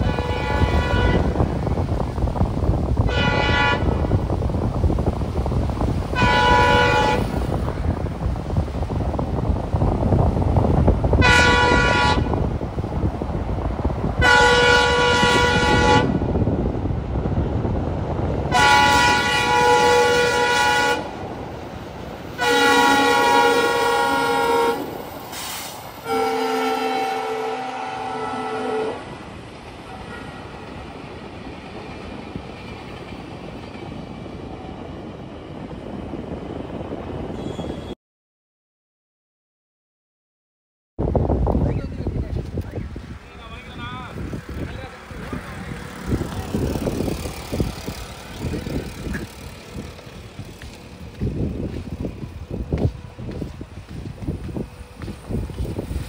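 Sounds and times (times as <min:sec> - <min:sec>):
locomotive air horn blasts: 0:00.0 - 0:01.5, 0:03.0 - 0:04.2, 0:06.1 - 0:07.5, 0:11.2 - 0:12.4, 0:14.2 - 0:16.3, 0:18.5 - 0:21.2, 0:22.4 - 0:29.1
low rumble of running train: 0:00.0 - 0:38.0, 0:41.0 - 0:56.0.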